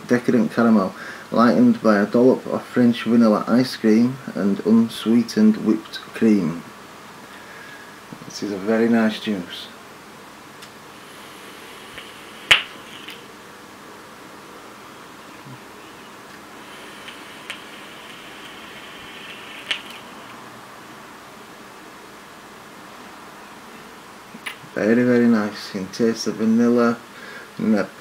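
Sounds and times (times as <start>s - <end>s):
vape drag hiss: 10.6s - 13.4s, 15.4s - 20.6s
sharp click: 11.9s - 13.2s, 17.0s - 20.4s.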